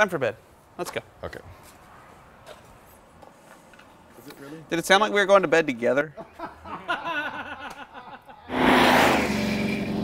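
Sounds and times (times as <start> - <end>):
light footsteps on concrete: 0.6 - 4.7.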